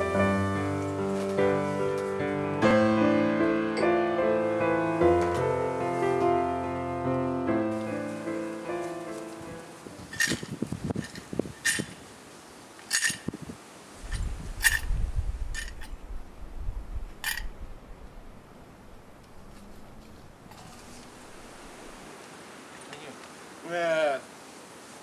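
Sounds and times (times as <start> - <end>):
piano music: 0.0 - 10.2.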